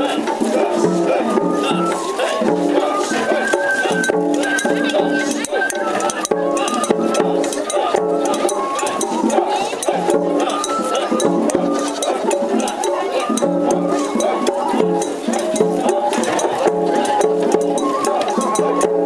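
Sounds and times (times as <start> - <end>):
festival drums beating: 0.0 - 19.0
voices: 0.0 - 19.0.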